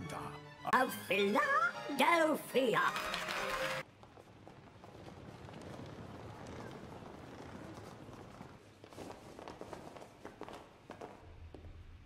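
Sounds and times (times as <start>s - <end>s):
faint footsteps walking: 3.8s - 12.0s.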